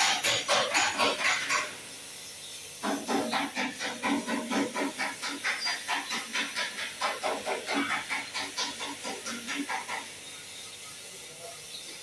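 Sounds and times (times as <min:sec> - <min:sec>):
steam hissing in pulses: 0:00.0 - 0:12.0.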